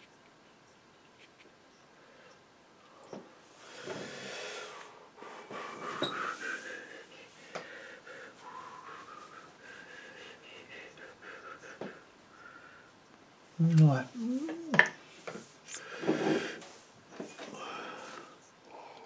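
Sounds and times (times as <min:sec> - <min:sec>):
person breathing: 0:02.0 - 0:13.0, 0:14.2 - 0:19.0.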